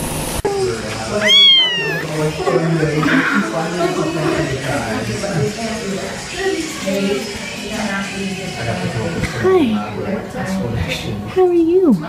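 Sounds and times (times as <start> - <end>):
kitten meowing: 1.2 - 2.1.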